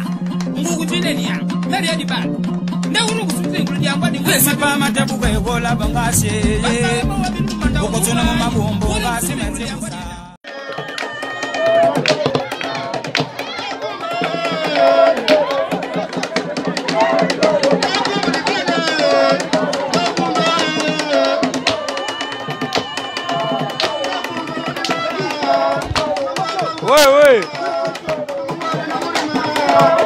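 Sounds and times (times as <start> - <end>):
drum strikes: 0.1 - 9.8, 10.8 - 30.0
voices singing: 2.8 - 30.0.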